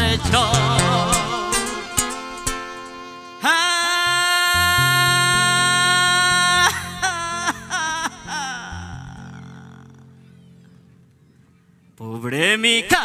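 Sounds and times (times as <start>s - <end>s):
low bass notes: 0.0s - 3.0s.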